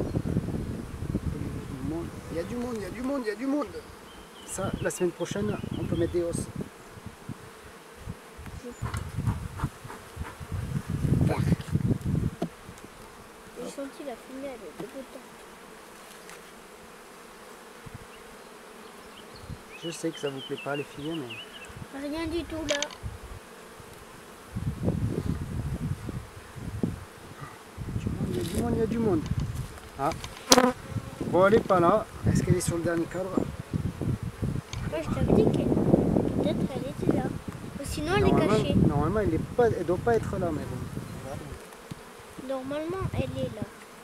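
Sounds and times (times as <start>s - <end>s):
honeybees buzzing: 0.0s - 44.0s.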